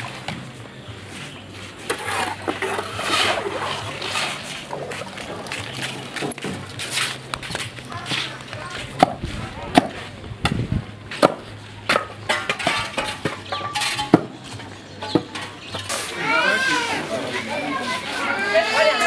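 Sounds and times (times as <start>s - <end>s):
voices of adults and children: 0.6s - 19.0s.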